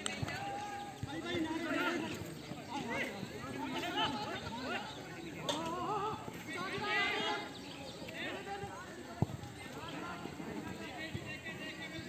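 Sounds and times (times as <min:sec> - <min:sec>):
players shouting: 0:00.0 - 0:12.0.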